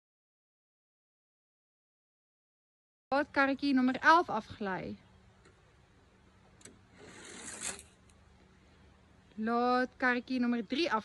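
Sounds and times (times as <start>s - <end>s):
toy car rolling down plastic slide: 7.0s - 7.9s.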